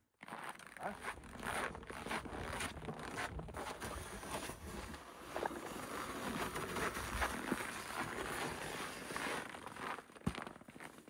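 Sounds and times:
snow pusher scraping snow: 3.5s - 9.6s.

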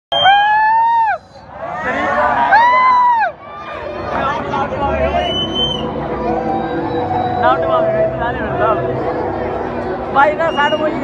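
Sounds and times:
crowd noise: 0.1s - 11.0s.

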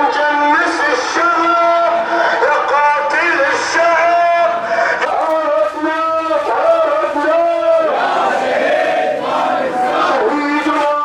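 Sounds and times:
crowd chanting: 6.4s - 10.8s.

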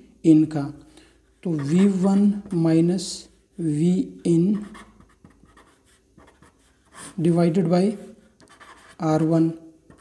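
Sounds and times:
pen scratching on paper: 1.3s - 2.6s, 4.5s - 9.3s.

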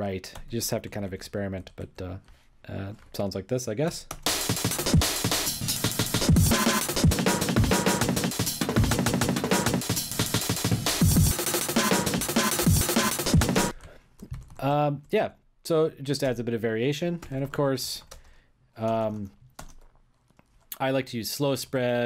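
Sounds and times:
chopped drum breakbeats: 4.2s - 13.7s.

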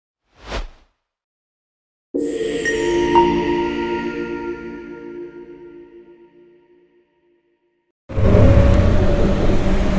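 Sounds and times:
whoosh sound effect: 0.4s - 0.9s.

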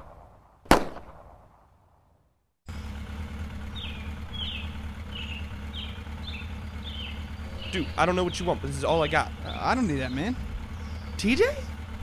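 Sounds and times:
gunshot: 0.0s - 1.6s
bird chirps: 3.6s - 11.9s.

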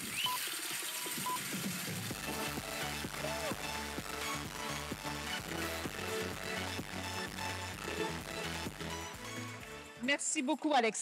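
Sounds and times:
background music with steady beat: 0.0s - 11.0s
audience applauding: 1.5s - 9.8s.

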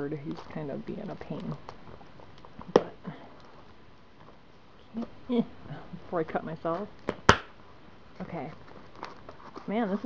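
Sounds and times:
wrapping paper rustling: 0.2s - 2.7s, 8.2s - 10.0s.

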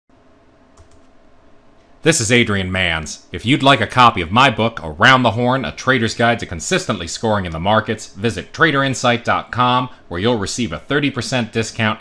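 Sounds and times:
faint background hiss and hum: 0.1s - 12.0s.

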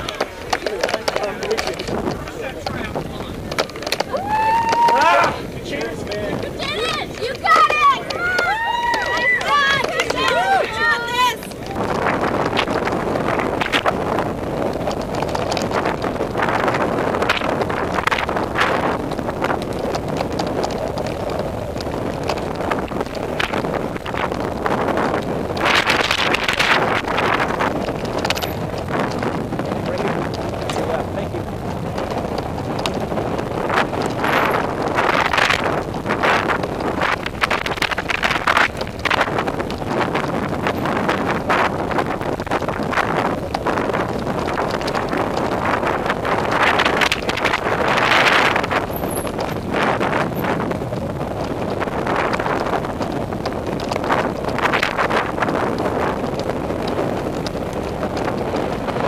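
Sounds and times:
bike rattling over rocks: 0.0s - 59.0s
tyre rumble on dirt: 0.0s - 59.0s
wind buffeting microphone: 0.0s - 59.0s.

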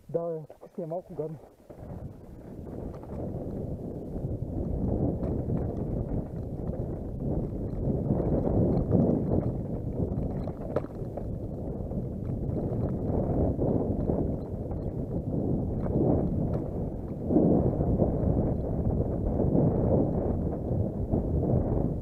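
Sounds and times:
mountain bike rattling over rocks: 1.4s - 18.8s
tyres clicking on stones: 8.4s - 11.3s.

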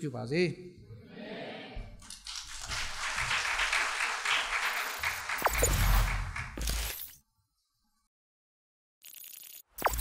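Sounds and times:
congregation clapping: 2.0s - 6.6s.

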